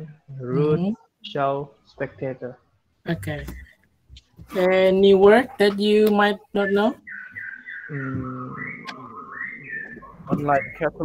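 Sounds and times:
faint voice: 7.9 - 9.2.

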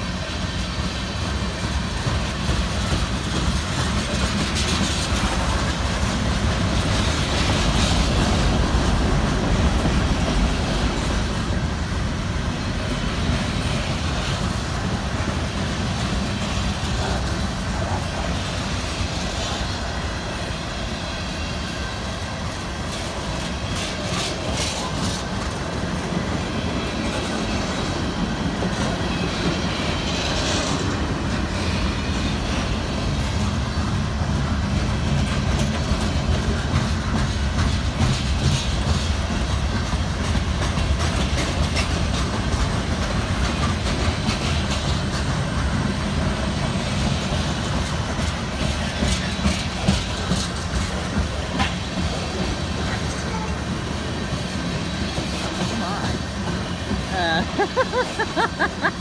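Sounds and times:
wheels clicking over rail joints: 0.0 - 20.8, 22.1 - 59.0
steel wheels rumbling on rail: 0.0 - 59.0.

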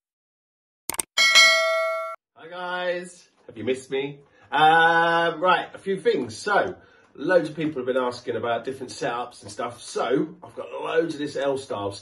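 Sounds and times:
bright bell ding: 1.2 - 2.2.

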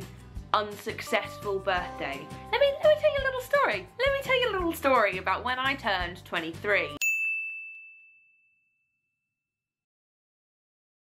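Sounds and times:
high ding: 7.0 - 9.2.

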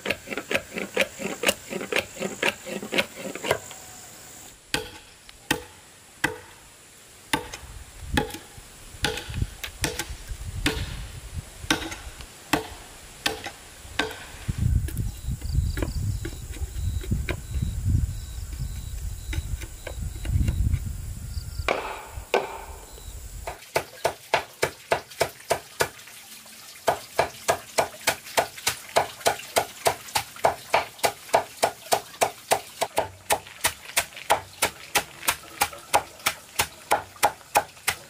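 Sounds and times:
machete chopping on wooden block: 4.7 - 6.6, 7.3 - 11.0, 11.7 - 15.0, 21.7 - 22.7, 23.5 - 25.9, 26.9 - 38.0.

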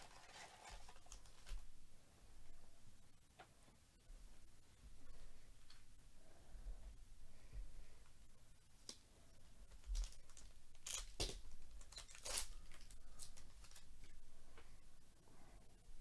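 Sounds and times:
foil pack tearing and crinkling: 9.9 - 13.8.

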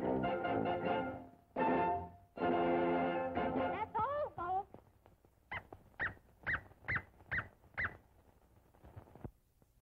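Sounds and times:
cartoon dog yipping: 5.5 - 8.0.

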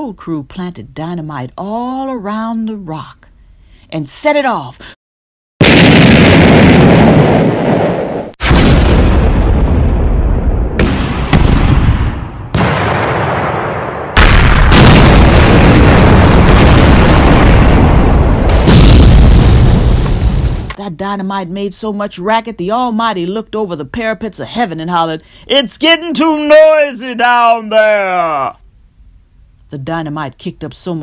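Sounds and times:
explosion blasts with deep rumble: 5.6 - 20.8.

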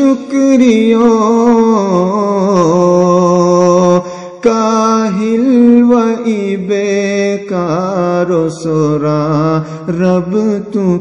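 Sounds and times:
man singing chant-like prayer: 0.0 - 11.0.

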